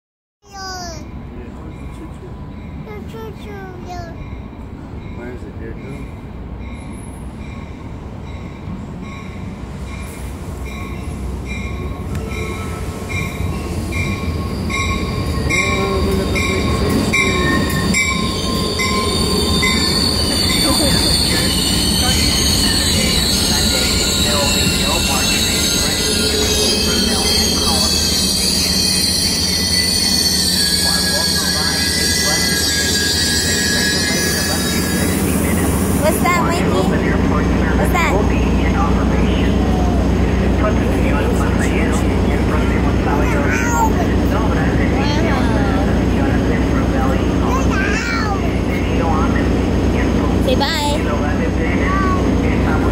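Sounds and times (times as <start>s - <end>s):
train rumble: 0.5s - 52.9s
bell ringing: 7.5s - 35.2s
wheel and brake squeal: 17.4s - 35.3s.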